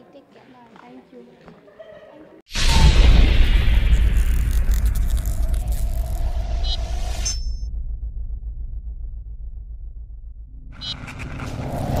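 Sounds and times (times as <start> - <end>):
deep pulsing rumble: 2.7 - 12.0.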